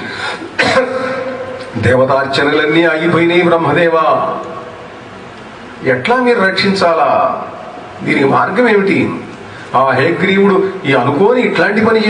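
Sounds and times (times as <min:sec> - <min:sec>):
man clearing his throat: 0:00.5 - 0:01.4.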